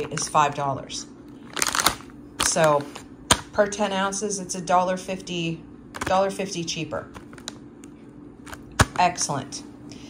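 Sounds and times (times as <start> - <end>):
fingers handling a plastic bag: 1.4 - 3.1.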